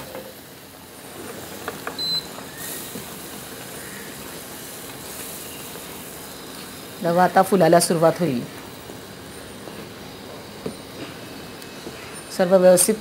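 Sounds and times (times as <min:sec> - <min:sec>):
milk bubbling in a frying pan: 0:00.2 - 0:12.1.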